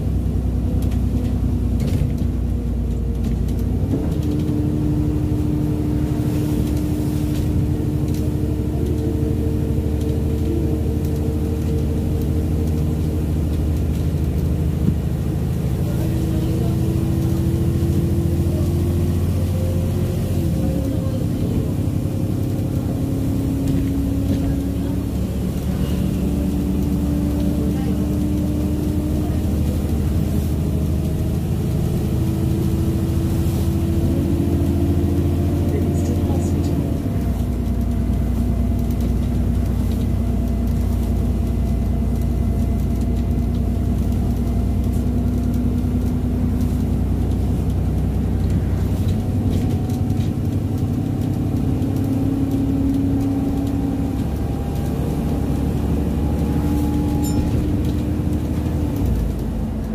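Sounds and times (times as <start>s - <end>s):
bus engine whine from inside: 0.0s - 59.9s.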